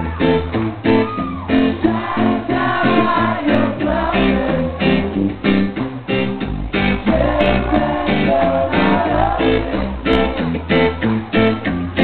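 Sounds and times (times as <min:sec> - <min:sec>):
strummed guitar and bass: 0:00.0 - 0:12.0
voices singing: 0:00.0 - 0:12.0.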